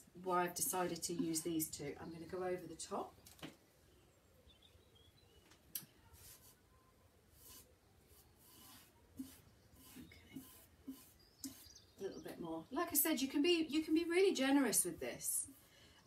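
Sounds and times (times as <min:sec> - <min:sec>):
brush swishing over paper: 0:06.0 - 0:06.7, 0:07.4 - 0:11.8
faint bird chirps: 0:07.8 - 0:12.4.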